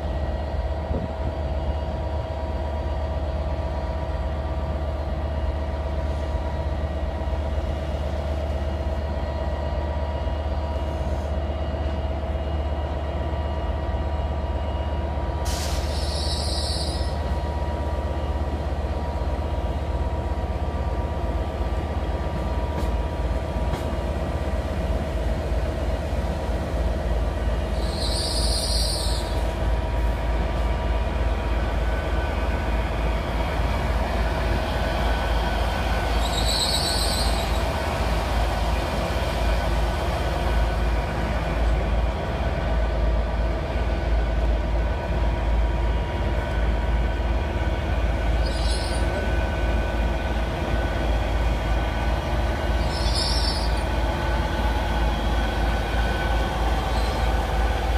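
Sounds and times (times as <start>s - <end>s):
train rumble and hum: 0.0s - 57.9s
high squeals from train: 10.0s - 17.8s, 27.6s - 29.6s, 35.4s - 38.0s, 48.2s - 50.0s, 52.4s - 54.1s, 56.0s - 57.8s.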